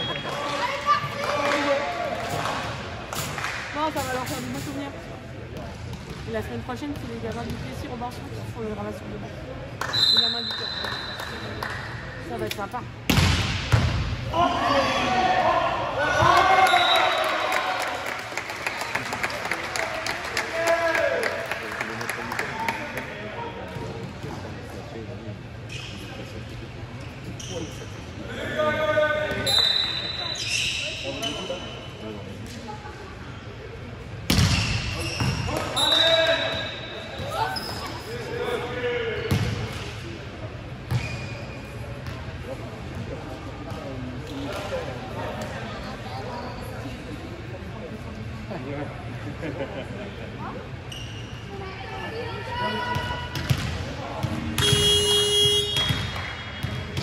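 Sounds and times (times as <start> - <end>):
volleyball bouncing and struck: 13.1 - 14.1, 53.3 - 57.0.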